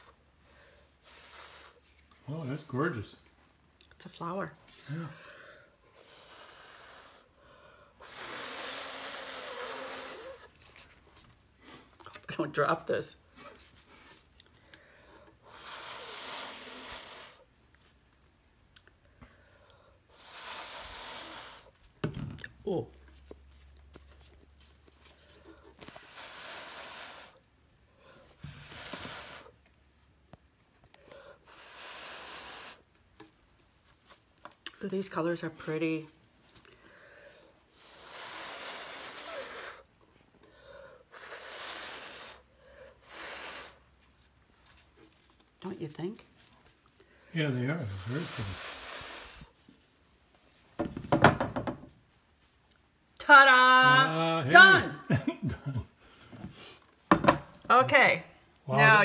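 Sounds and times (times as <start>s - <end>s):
air blowing: 8.0s - 10.5s, 15.4s - 17.5s, 20.1s - 21.8s, 25.8s - 27.4s, 28.4s - 29.6s, 31.4s - 32.9s, 37.8s - 39.9s, 41.1s - 43.9s, 47.8s - 49.6s.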